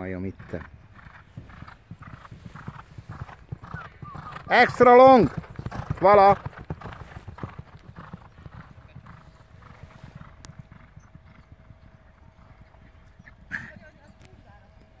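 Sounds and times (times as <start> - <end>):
galloping hoofbeats on sand: 0.0 - 15.0.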